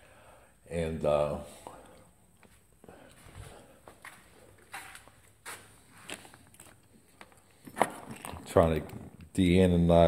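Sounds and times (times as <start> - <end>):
soft scuffs and rustles: 2.3 - 8.6.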